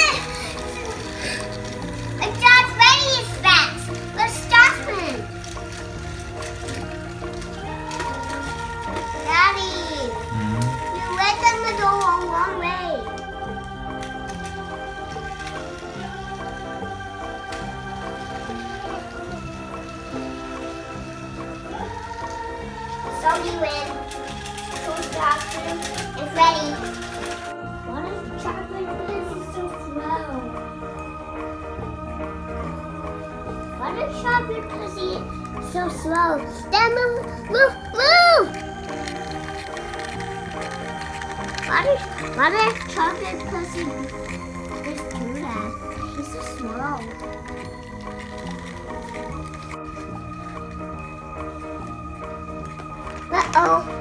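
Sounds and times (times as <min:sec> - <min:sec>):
child's voice: 0:00.0 - 0:00.5, 0:02.2 - 0:05.2, 0:07.9 - 0:13.2, 0:23.0 - 0:24.0, 0:24.8 - 0:27.1, 0:27.9 - 0:30.6, 0:33.8 - 0:38.7, 0:41.6 - 0:44.1, 0:44.8 - 0:47.2, 0:53.3 - 0:53.9
cheerful background music: 0:00.0 - 0:54.0
toy trains whirring and clicking: 0:00.0 - 0:54.0.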